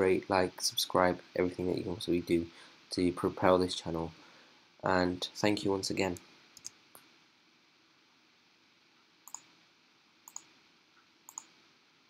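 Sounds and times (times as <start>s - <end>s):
computer mouse clicks: 6.6s - 7.0s, 9.2s - 9.5s, 10.2s - 10.5s, 11.3s - 11.6s.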